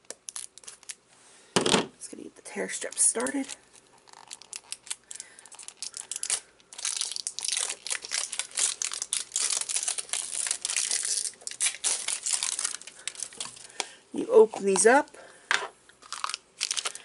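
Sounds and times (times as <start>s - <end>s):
plastic wrapper crinkling and tearing: 0.0s - 1.0s, 2.7s - 13.9s, 16.0s - 17.0s.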